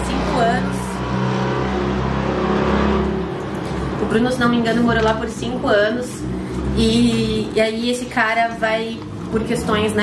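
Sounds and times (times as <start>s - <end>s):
motor engine running: 0.0s - 10.0s.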